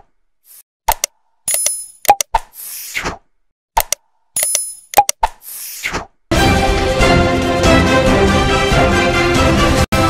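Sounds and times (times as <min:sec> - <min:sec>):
pops and clicks: 0:00.5 - 0:02.7, 0:03.8 - 0:05.6
theme music: 0:06.3 - 0:10.0.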